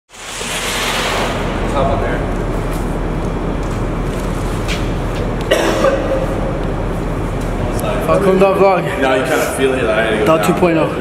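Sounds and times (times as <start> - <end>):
steady rushing background noise: 0.1 - 11.0
man coughing and retching: 5.5 - 6.4.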